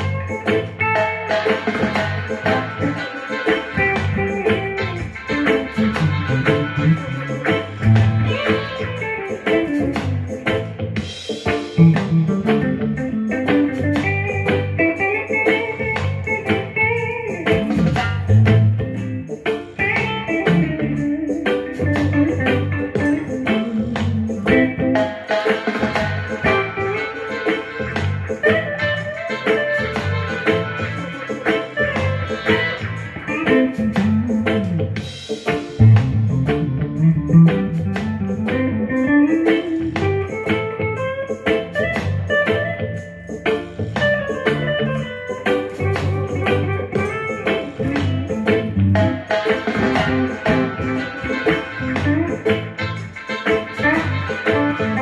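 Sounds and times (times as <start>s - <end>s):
electric guitar single-note lines: 0.0s - 35.0s, 35.6s - 55.0s
backing track with drums and bass: 0.0s - 55.0s.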